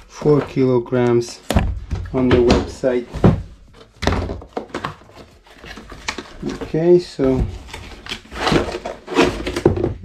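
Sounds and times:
box knocks and rustles: 1.5s - 10.0s
cardboard box set down: 7.3s - 10.0s.

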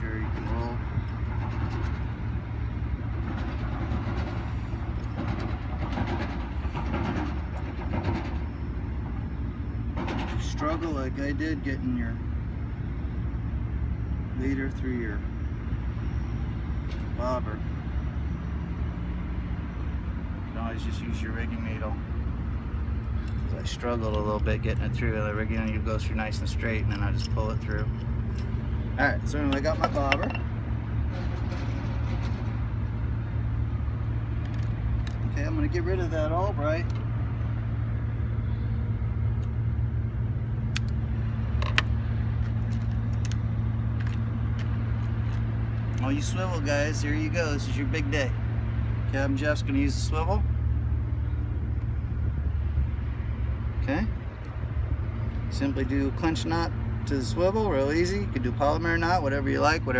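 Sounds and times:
low motor hum: 0.0s - 59.9s.

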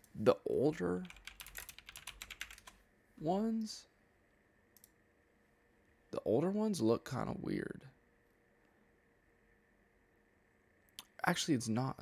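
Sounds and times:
fast typing on keyboard: 1.0s - 2.8s.

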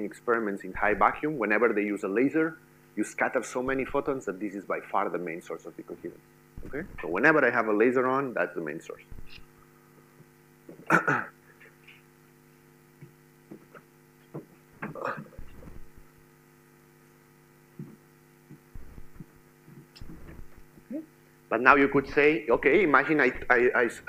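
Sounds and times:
low electrical hum: 0.0s - 24.0s
man coughing: 10.8s - 11.8s, 14.8s - 15.6s.

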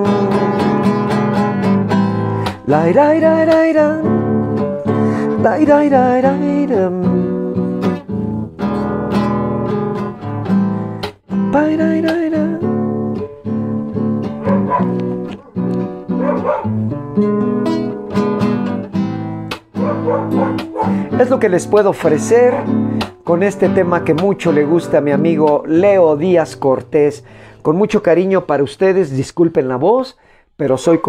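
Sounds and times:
classical guitar strumming: 0.0s - 28.8s.

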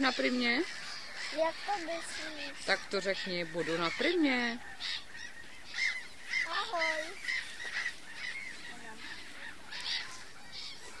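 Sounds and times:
gulls calling: 0.0s - 11.0s.

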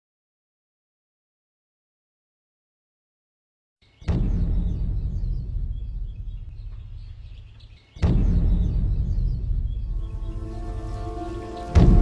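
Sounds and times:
deep low boom rumbling: 4.1s - 12.0s.

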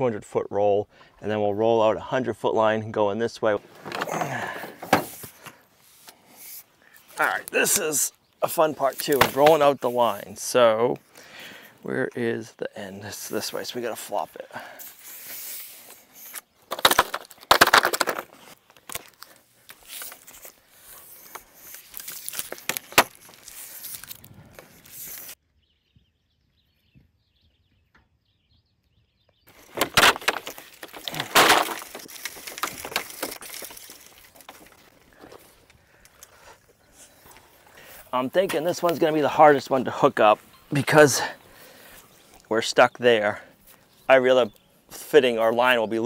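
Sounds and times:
plastic pipe dragged over dirt: 29.5s - 35.5s.

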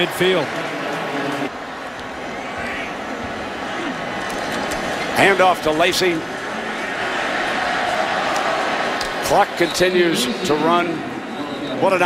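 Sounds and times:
stadium crowd noise: 0.0s - 12.0s.

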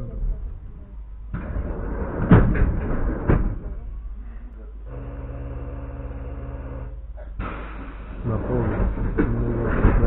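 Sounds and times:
continuous low rumble: 0.0s - 10.0s
low electrical hum: 0.0s - 10.0s.

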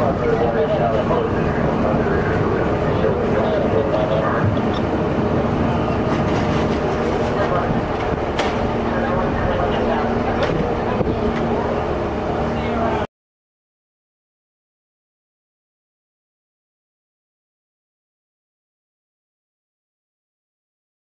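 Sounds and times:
fire engine humming: 0.0s - 13.1s
indistinct crowd voices: 0.0s - 13.1s.

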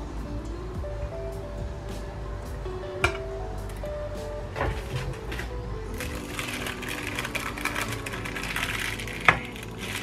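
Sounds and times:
faint background music: 0.0s - 10.0s
plastic film crinkling: 5.9s - 10.0s.

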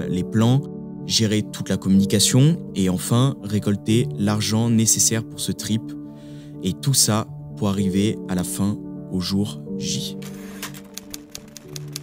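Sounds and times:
soft background music: 0.0s - 12.0s
typewriter key clicks: 10.2s - 12.0s.

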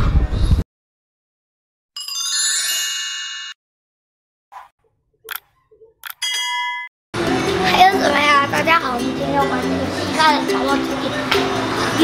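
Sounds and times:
short ding: 6.2s - 6.9s.

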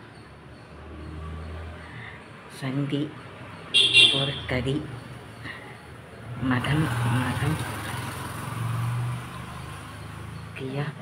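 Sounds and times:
vehicle engine passing: 0.0s - 11.0s.

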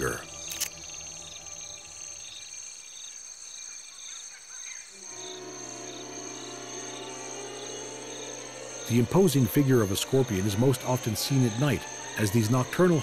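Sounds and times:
low music drone: 0.0s - 2.4s, 5.1s - 13.0s
insect chorus trilling: 0.0s - 13.0s.

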